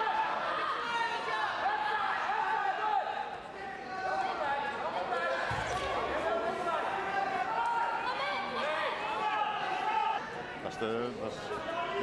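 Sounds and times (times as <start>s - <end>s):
voices calling in hall: 0.0s - 12.0s.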